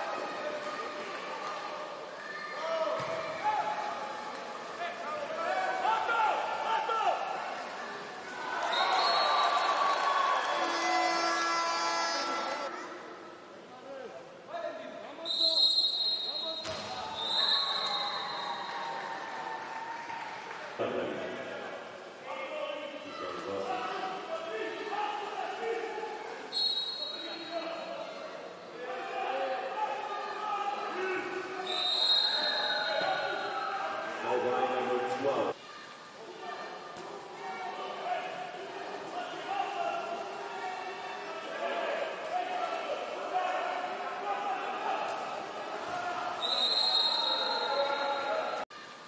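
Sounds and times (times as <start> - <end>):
arena noise: 0.0 - 49.0
referee's whistle blast: 15.3 - 18.6, 26.5 - 27.5, 46.4 - 48.6.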